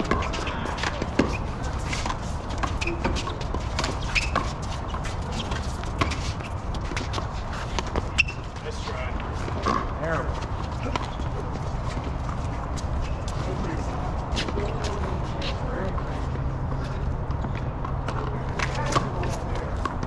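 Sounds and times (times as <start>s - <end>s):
footsteps scuffing on court: 0.0s - 20.0s.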